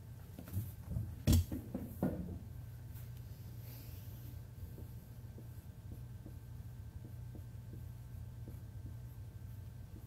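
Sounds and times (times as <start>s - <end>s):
steady low hum: 0.0s - 10.0s
marker writing on whiteboard: 4.6s - 10.0s.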